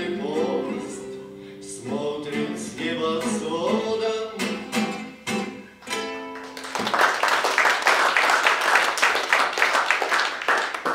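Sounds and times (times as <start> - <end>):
strummed acoustic guitar chord: 0.0 - 6.5
audience applause: 6.4 - 10.9.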